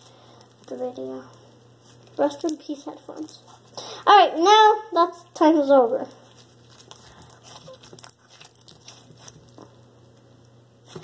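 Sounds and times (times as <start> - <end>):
slime squeezed crackling: 6.2 - 9.9.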